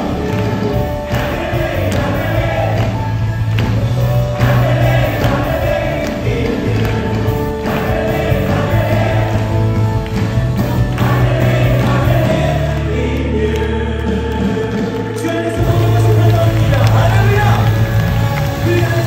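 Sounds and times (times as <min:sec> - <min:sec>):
band playing: 0:00.0 - 0:19.0
congregation singing: 0:00.0 - 0:19.0
held bass notes: 0:00.0 - 0:19.0.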